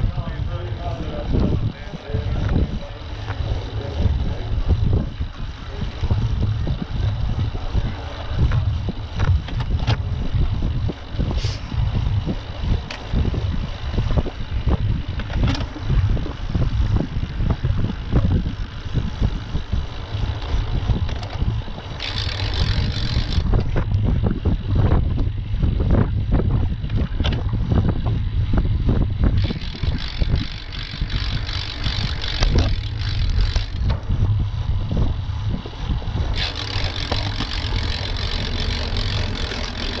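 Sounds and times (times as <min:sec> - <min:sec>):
tyre noise on asphalt: 0:00.0 - 0:40.0
wind buffeting microphone: 0:00.0 - 0:40.0.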